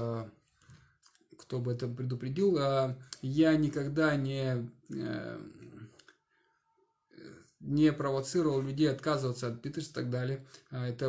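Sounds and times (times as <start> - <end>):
man speaking: 0.0 - 0.5, 1.3 - 6.1, 7.1 - 11.0.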